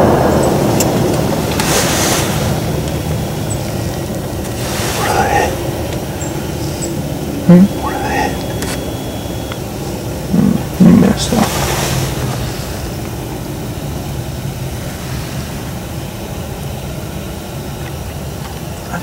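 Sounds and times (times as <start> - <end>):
steady low background noise: 0.0 - 19.0.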